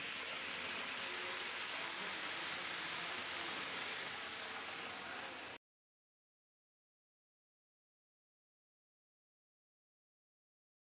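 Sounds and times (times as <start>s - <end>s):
model train rolling on track: 0.0s - 5.6s.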